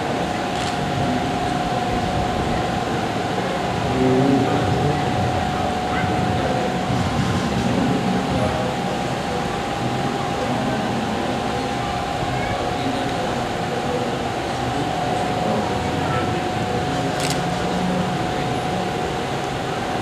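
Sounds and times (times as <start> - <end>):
faint murmured voices: 0.0 - 20.0
noisy hum with whine: 0.0 - 20.0.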